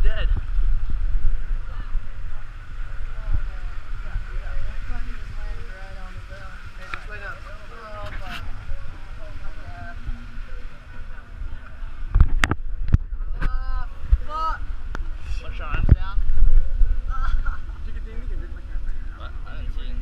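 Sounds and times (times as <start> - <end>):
wind rumble on microphone: 0.0 - 20.0
people talking indistinctly: 1.3 - 20.0.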